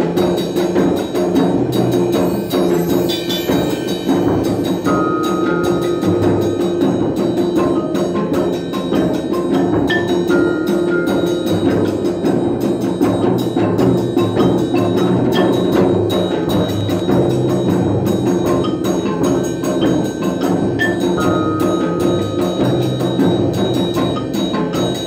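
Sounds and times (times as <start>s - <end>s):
mallet percussion ensemble: 0.0s - 25.0s
timpani: 0.0s - 25.0s.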